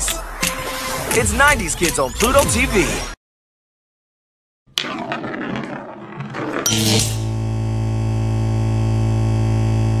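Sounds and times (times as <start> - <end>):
low synthesizer drone: 6.7 - 10.0.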